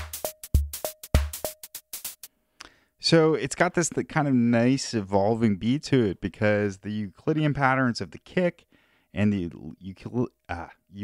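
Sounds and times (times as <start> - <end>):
hi-hat ticks: 0.0 - 2.3.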